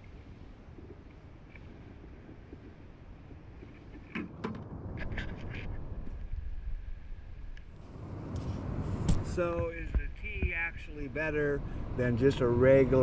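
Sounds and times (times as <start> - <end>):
wind and surf rumble: 0.0 - 13.0.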